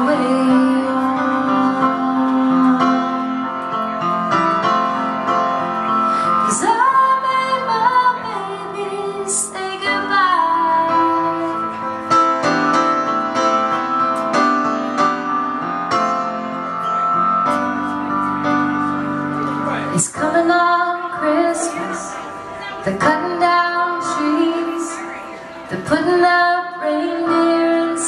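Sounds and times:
grand piano chords and melody: 0:00.0 - 0:28.0.

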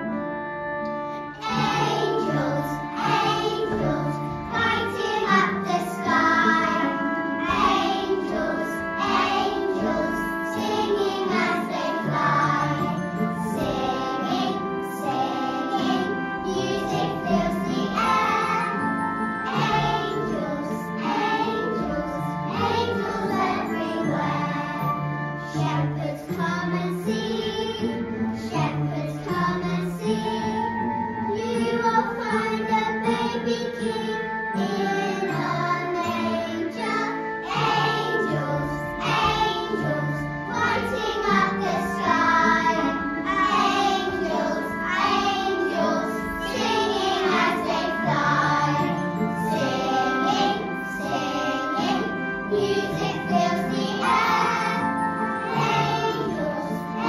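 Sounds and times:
instrumental accompaniment: 0:00.0 - 0:57.0
children singing together: 0:01.1 - 0:57.0.

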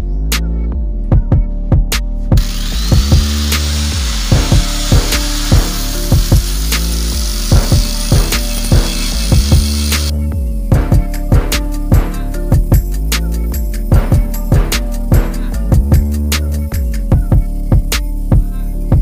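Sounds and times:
background music with steady beat: 0:00.0 - 0:19.0
angle grinder sanding metal: 0:02.4 - 0:10.1.

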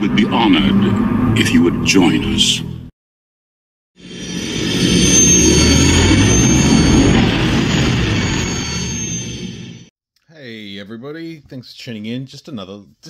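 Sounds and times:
steady high whine: 0:04.0 - 0:09.9.

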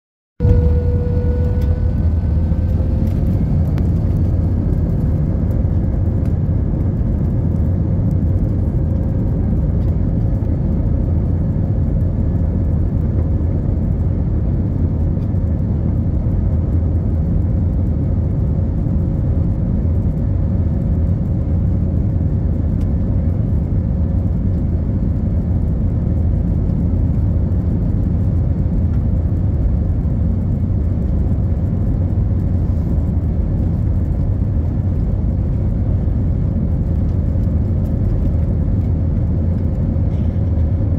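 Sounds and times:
faint engine whine: 0:00.4 - 0:40.9
jet engine rumble in cabin: 0:00.4 - 0:40.9.

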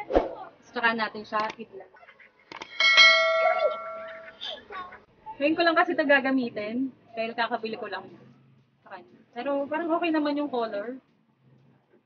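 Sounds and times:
bright bell ding: 0:02.7 - 0:04.4.

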